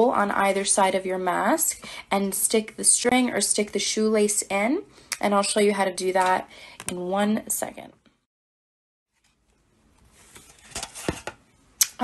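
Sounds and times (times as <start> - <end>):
paper and plastic rustling: 9.1 - 11.4.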